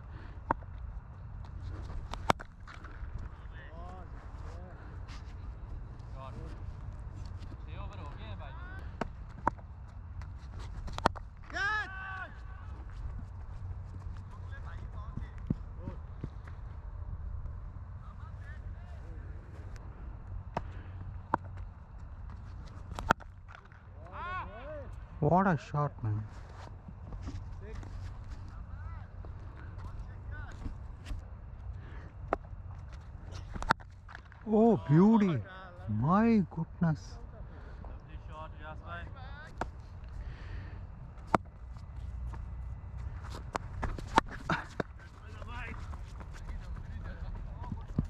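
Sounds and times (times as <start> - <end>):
cricket bat hitting ball: 22.8 - 23.8.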